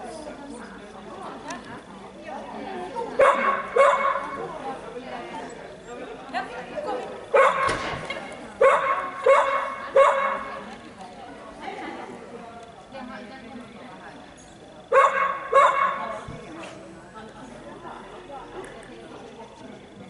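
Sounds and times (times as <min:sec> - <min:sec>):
dog barking with echo: 0:03.2 - 0:04.4, 0:07.3 - 0:07.8, 0:08.6 - 0:10.6, 0:14.9 - 0:16.2.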